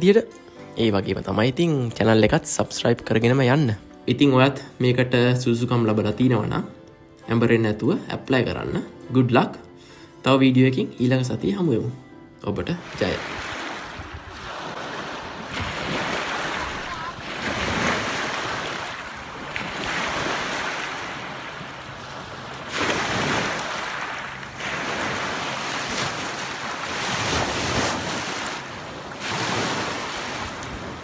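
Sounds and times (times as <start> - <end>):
waves washing over pebbles: 12.8 - 31.0.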